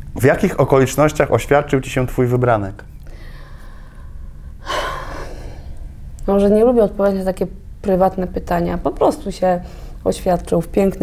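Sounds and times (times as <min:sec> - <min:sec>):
low room hum: 0:00.0 - 0:11.0
woman gasping: 0:03.0 - 0:05.8.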